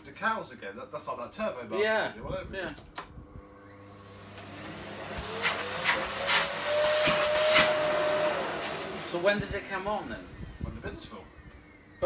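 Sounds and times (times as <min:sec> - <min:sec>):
vacuum cleaner motor whining: 0:03.5 - 0:12.0
sharp rushes of air: 0:05.2 - 0:08.9.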